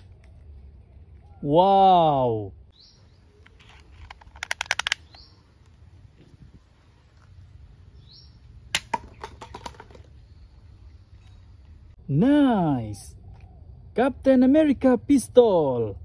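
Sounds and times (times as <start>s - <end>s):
rattling clicks: 3.9s - 5.2s
toy pistol snap: 4.1s - 5.2s.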